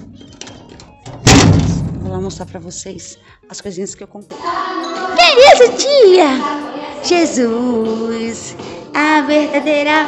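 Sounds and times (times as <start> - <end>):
loud thump: 1.2 - 2.4.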